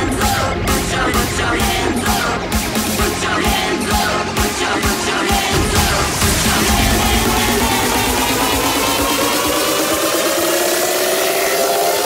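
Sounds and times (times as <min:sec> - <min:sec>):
synth riser climbing in pitch: 0:05.3 - 0:12.0.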